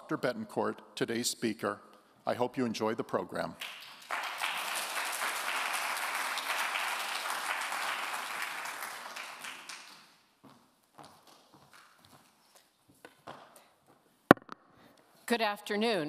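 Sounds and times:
audience applauding: 3.6 - 10.1.

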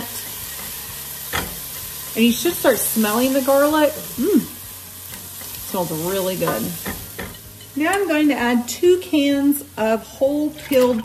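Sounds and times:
onion and garlic sizzling in oil: 0.0 - 11.0.

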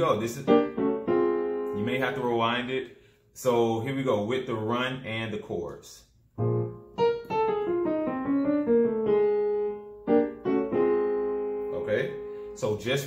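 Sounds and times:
digital piano chords and runs: 0.0 - 2.8, 6.4 - 13.0.

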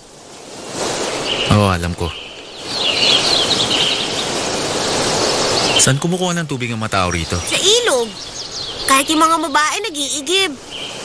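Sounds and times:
birds chirping: 0.2 - 11.0.

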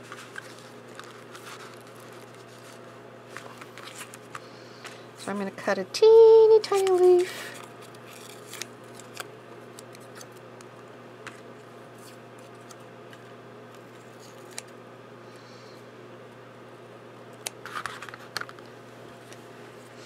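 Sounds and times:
paper rustling and clicks: 0.0 - 4.4
low steady hum: 0.0 - 20.0.

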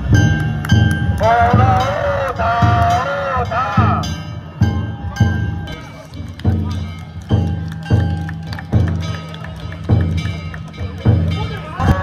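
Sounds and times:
large drum beats: 0.0 - 12.0
small gongs clanging: 0.0 - 12.0.

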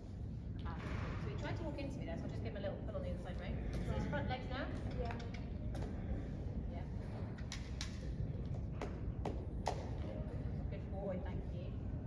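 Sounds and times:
low room and microphone rumble: 0.0 - 12.0.

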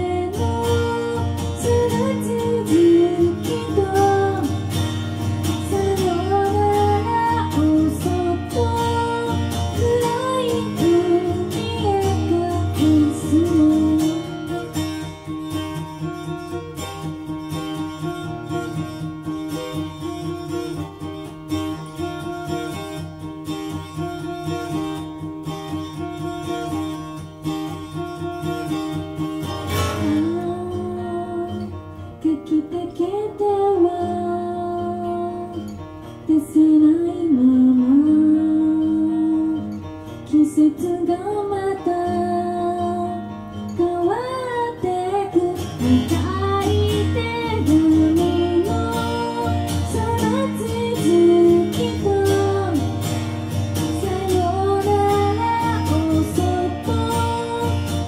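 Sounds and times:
woman singing: 0.0 - 15.2, 29.7 - 58.0
strummed acoustic guitar: 0.0 - 58.0.

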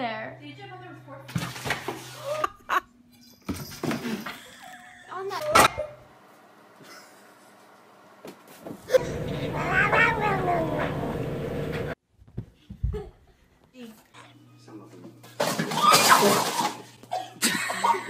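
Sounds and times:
voices: 9.0 - 12.0.

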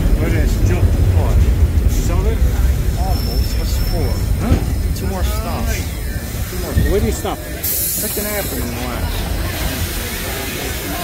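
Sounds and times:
pneumatic door air hiss: 6.3 - 8.6.

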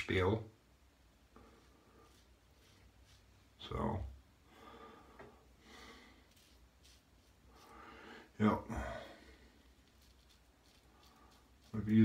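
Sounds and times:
faint soft noises: 0.0 - 12.0.

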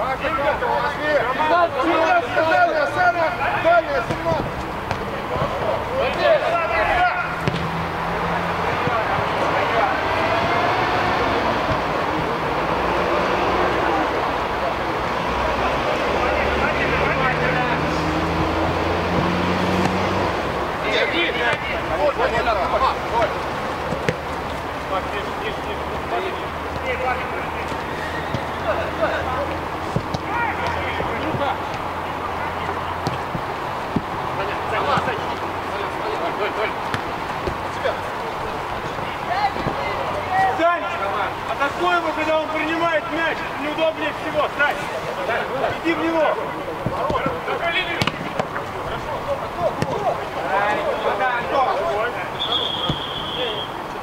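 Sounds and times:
players shouting: 0.0 - 54.0.

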